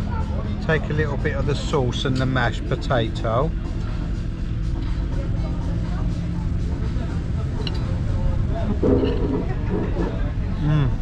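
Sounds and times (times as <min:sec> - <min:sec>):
vehicle engine running: 0:00.0 - 0:10.6
road traffic rumble: 0:00.0 - 0:11.0
faint background voices: 0:03.8 - 0:11.0.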